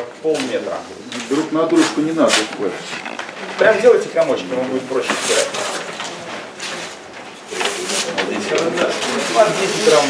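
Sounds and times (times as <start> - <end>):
paper crumpling: 1.2 - 10.0
paper tearing: 4.9 - 10.0.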